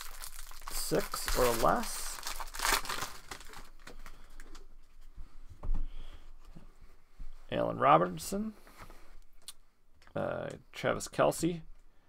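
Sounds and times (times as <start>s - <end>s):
cards rustling: 0.0s - 4.7s
foil wrapper crinkling and tearing: 0.0s - 4.7s.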